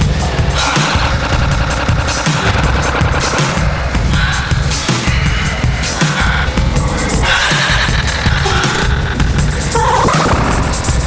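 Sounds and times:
electronic noise music: 0.0 - 11.0.

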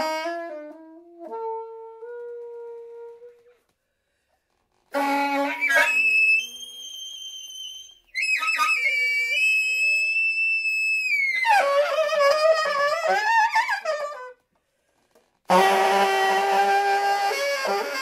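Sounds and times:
alto saxophone solo: 0.0 - 3.7, 4.9 - 14.5, 15.4 - 18.0.

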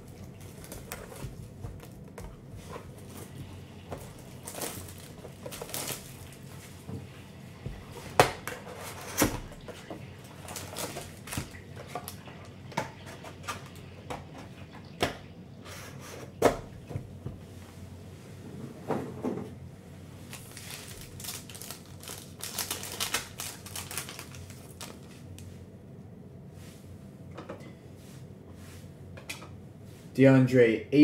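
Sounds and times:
foil packs rustling: 0.0 - 12.4, 20.2 - 25.5.

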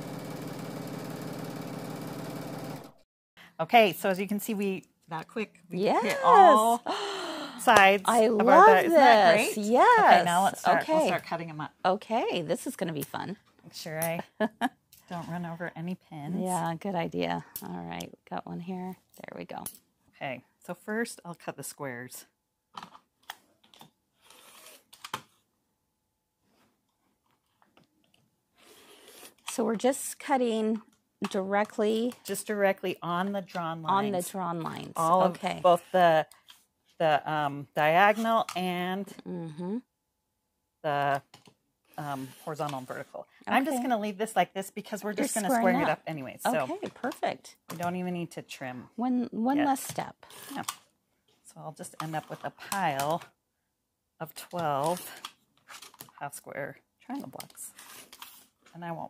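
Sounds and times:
sewing machine stitching: 0.0 - 3.0.

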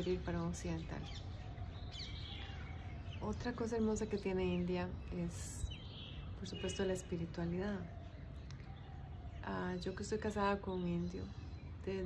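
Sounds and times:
birds chirping faintly: 0.0 - 12.0.

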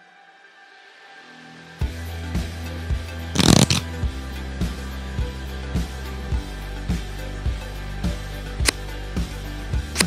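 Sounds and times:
background music with steady beat: 0.0 - 10.0
card shuffling sound effect: 3.4 - 3.9.

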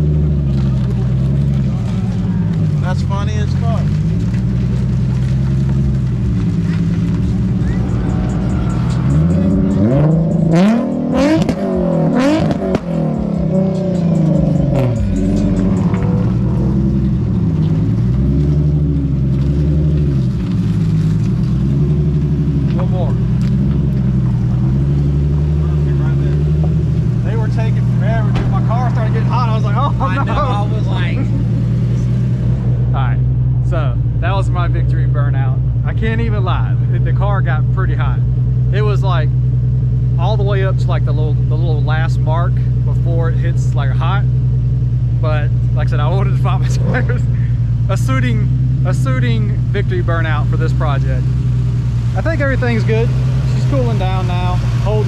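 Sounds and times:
car engine idling and revving: 0.0 - 55.0.

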